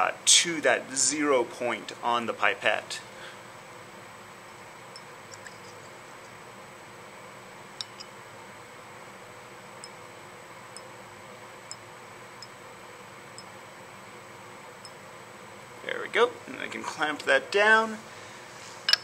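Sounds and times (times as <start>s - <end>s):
ventilation hum and hiss: 0.0s - 19.0s.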